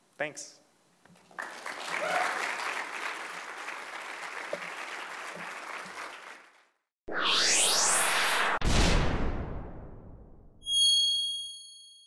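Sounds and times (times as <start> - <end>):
whoosh: 7.1 - 10.6.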